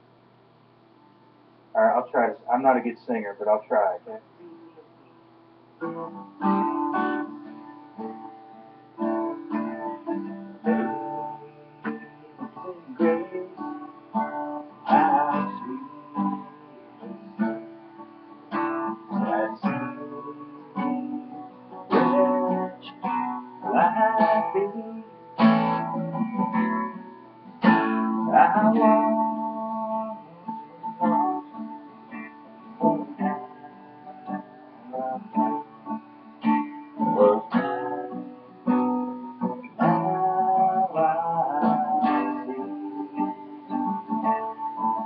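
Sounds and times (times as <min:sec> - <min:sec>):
acoustic guitar strumming: 0:01.0 - 0:45.0.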